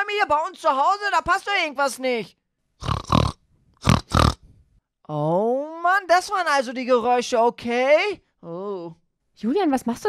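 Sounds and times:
pigs grunting: 0:02.8 - 0:04.4.

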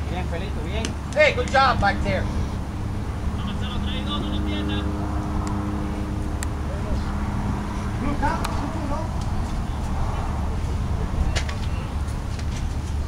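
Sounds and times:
distant voices: 0:00.0 - 0:13.0
steady low rumble: 0:00.0 - 0:13.0.

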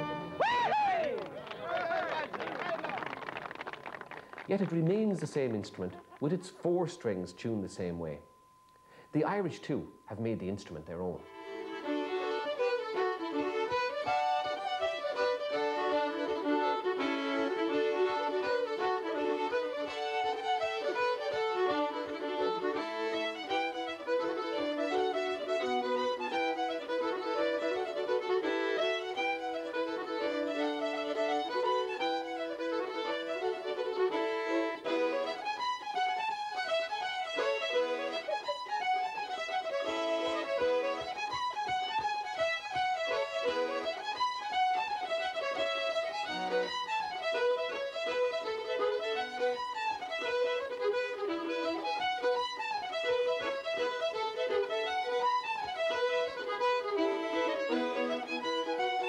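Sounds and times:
button accordion: 0:00.0 - 0:00.4, 0:04.2 - 0:59.0
fiddles playing folk tune: 0:00.0 - 0:02.1, 0:03.4 - 0:08.2, 0:09.0 - 0:59.0.

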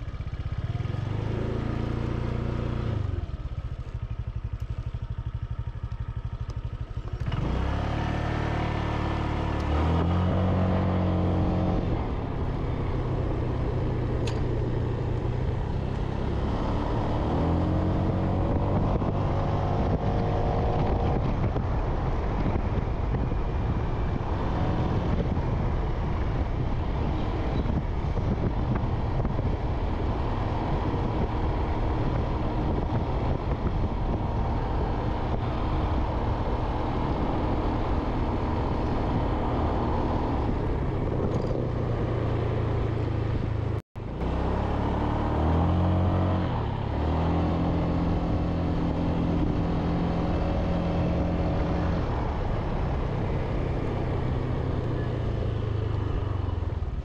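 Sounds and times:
motorbike engine running: 0:00.0 - 0:09.6
road and wind noise: 0:00.0 - 0:57.0.

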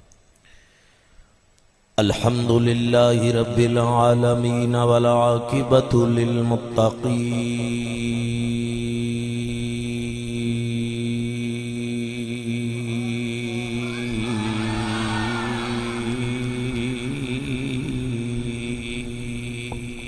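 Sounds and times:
man chanting religious recitation: 0:02.0 - 0:20.0.

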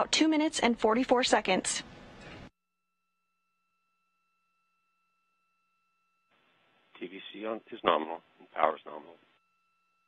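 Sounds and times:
faint steady tones: 0:03.0 - 0:10.0.

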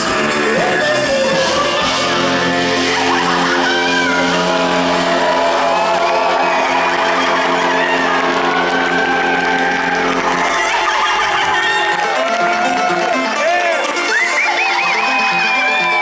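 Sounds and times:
crowd cheering: 0:00.0 - 0:16.0
live band music: 0:00.0 - 0:16.0
sustained low notes: 0:00.4 - 0:14.0.

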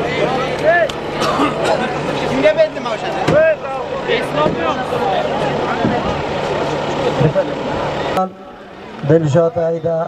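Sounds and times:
crowd of men shouting: 0:00.0 - 0:10.0.

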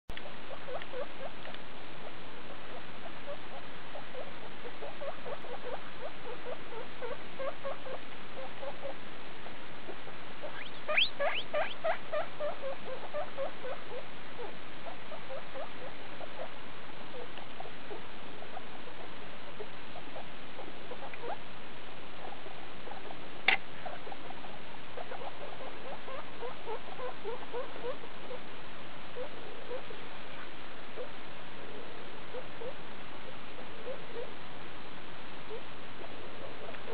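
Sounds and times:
guinea pigs squeaking: 0:00.1 - 0:09.0, 0:09.8 - 0:21.4, 0:22.2 - 0:28.4, 0:29.1 - 0:31.1
background hiss: 0:00.1 - 0:36.9.

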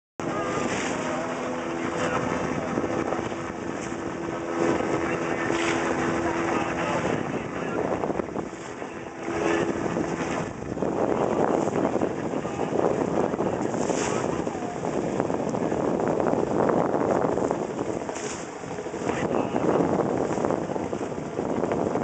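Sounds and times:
motorboat engine droning: 0:00.2 - 0:22.0
wind and water noise: 0:00.2 - 0:22.0.

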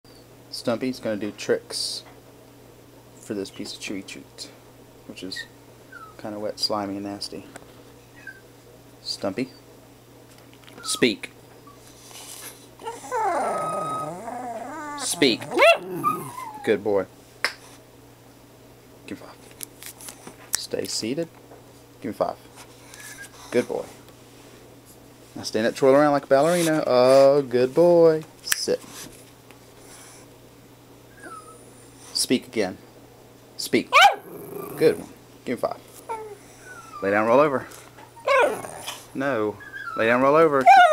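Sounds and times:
dog whining: 0:05.9 - 0:06.2, 0:12.8 - 0:16.8, 0:31.1 - 0:31.8, 0:33.9 - 0:35.1, 0:36.1 - 0:37.3, 0:38.0 - 0:40.9
dog drawn-out howling call: 0:12.8 - 0:16.7, 0:38.2 - 0:39.0.

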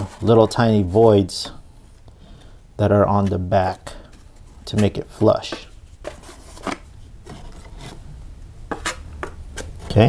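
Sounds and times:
taping knife scraping compound: 0:03.2 - 0:08.0.

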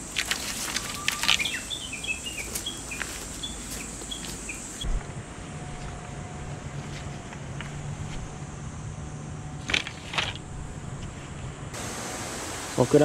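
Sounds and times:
bamboo poles clacking: 0:00.0 - 0:01.7, 0:09.6 - 0:11.2
bird chirping: 0:00.6 - 0:04.9.

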